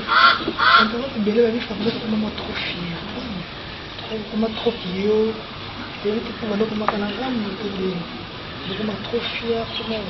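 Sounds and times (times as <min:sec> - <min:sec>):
geese honking: 0:00.0 - 0:01.0.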